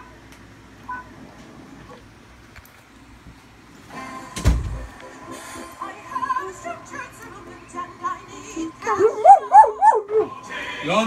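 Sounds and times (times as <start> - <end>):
background music: 3.9 - 11.0
dog howling: 8.9 - 10.4.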